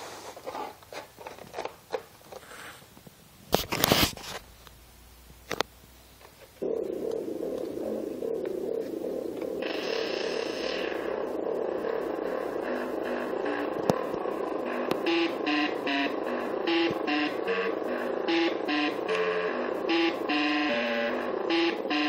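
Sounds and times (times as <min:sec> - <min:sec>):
synthesizer pulsed note: 0:06.6 - 0:22.0.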